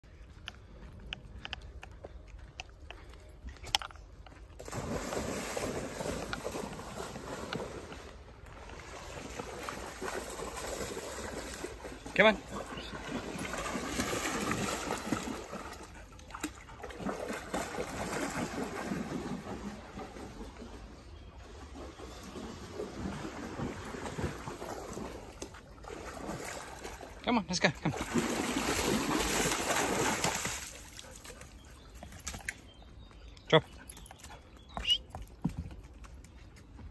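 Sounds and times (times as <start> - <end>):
dog splashing through water: 4.6 - 20.9, 21.5 - 27.2, 27.8 - 32.7.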